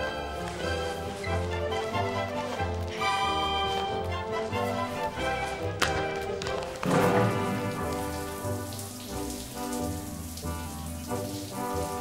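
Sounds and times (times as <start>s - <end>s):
held orchestral chords: 0.0s - 12.0s
shower water spraying on tiles: 0.0s - 12.0s.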